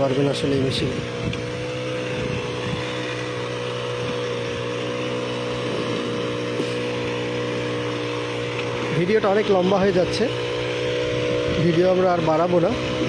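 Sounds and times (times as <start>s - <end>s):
brush cutter engine running: 0.0s - 13.0s
weeder head churning soil: 0.0s - 13.0s.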